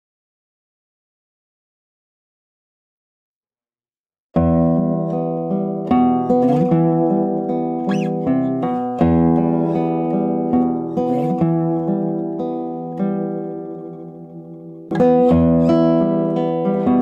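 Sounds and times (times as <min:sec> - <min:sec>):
classical guitar playing slow piece: 0:04.4 - 0:17.0.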